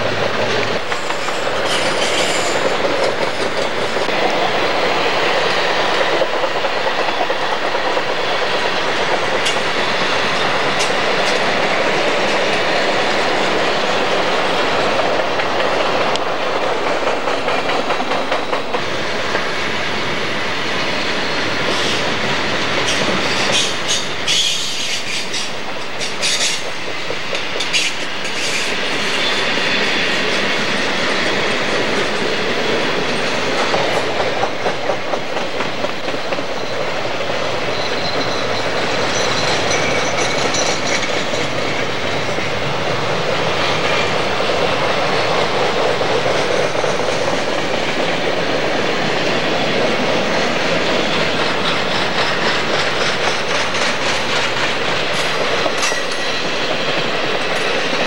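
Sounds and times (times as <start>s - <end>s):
train wheels rolling on rails: 0.0s - 58.0s.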